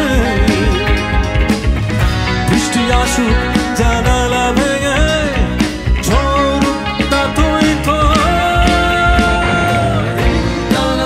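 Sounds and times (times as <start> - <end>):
person singing: 0.0 - 1.5, 2.4 - 11.0
rock band playing live: 0.0 - 11.0.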